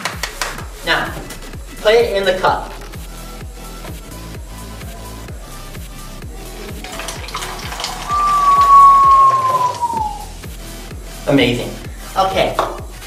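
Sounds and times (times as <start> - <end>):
background music with steady beat: 0.0 - 13.0
liquid pouring into plastic bottle: 6.7 - 9.9.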